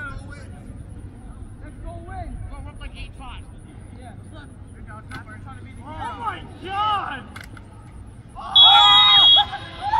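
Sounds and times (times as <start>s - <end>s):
steady low rumble: 0.0s - 8.5s
distant players calling out: 5.2s - 9.9s.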